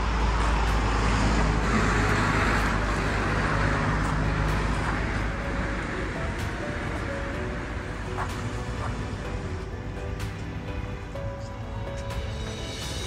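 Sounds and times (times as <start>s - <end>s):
vehicle passing by: 0.0s - 10.2s
road traffic rumble: 0.0s - 13.0s.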